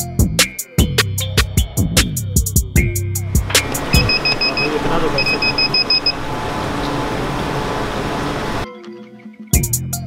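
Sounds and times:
store noise murmur: 3.3 - 8.6
high electronic beeps: 3.5 - 7.0.

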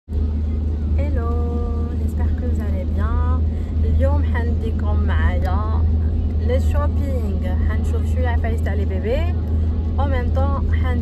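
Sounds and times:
car cabin rumble: 0.1 - 11.0
woman's voice: 1.0 - 11.0.

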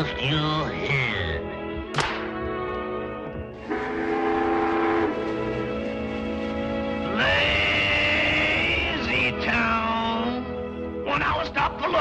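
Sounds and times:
steam whistle long blast: 3.6 - 5.8.

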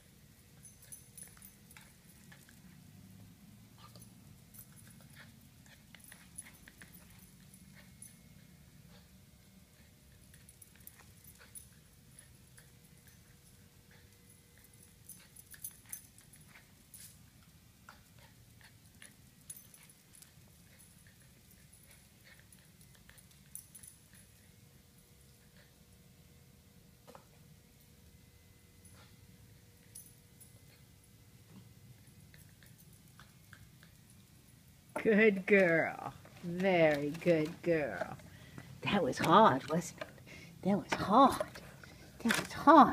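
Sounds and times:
faint steady hum: 0.0 - 42.9.

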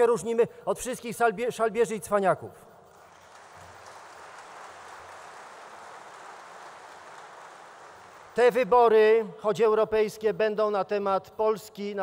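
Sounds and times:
audience applauding: 2.9 - 8.6.

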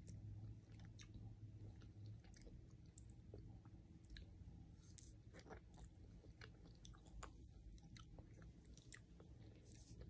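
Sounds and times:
chewing soft ice cream: 0.0 - 10.0.

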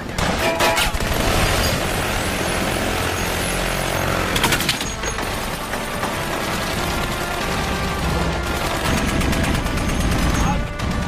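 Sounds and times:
helicopter rumble: 0.0 - 11.0
rapid gunfire: 0.0 - 11.0.

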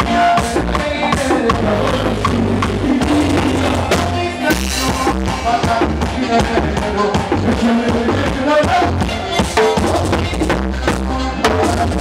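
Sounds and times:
bass guitar: 0.0 - 12.0
percussion beat: 0.0 - 12.0.

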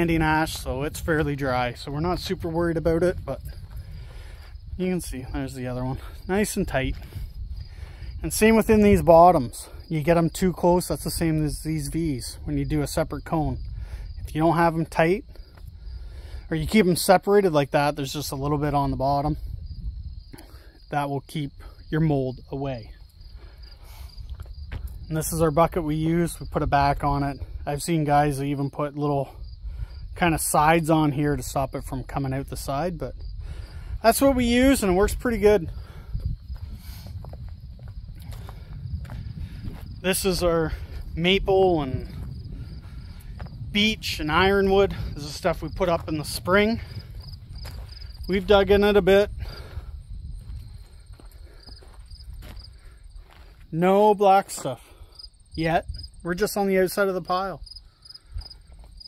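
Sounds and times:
footsteps on dirt: 0.0 - 9.2, 23.0 - 25.1, 34.1 - 55.3, 57.6 - 59.0
wind on microphone: 0.0 - 16.5, 18.2 - 20.7, 21.5 - 28.4, 29.2 - 53.5, 54.8 - 56.4
insects chirping: 0.0 - 59.0
low outdoor rumble: 29.2 - 53.6.

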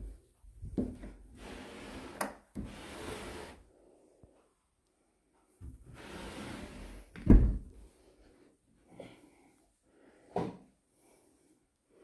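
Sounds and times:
wooden cupboard door shutting: 7.2 - 7.7.

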